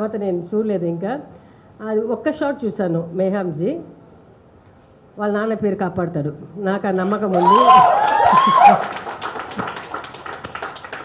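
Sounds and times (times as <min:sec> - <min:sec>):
small group applauding: 0:07.3 - 0:11.0.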